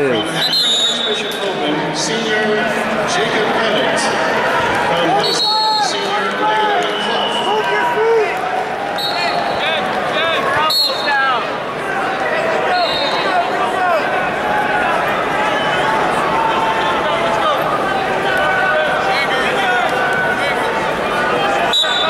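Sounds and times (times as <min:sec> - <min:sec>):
crowd chatter: 0:00.0 - 0:22.0
whistle blasts: 0:00.3 - 0:01.3, 0:09.0 - 0:09.6, 0:10.6 - 0:11.1, 0:21.7 - 0:22.0.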